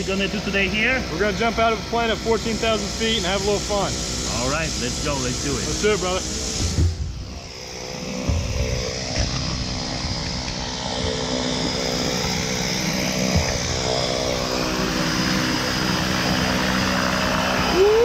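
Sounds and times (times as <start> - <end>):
propeller airplane engine buzzing: 0.0 - 18.0
person whooping: 17.6 - 18.0.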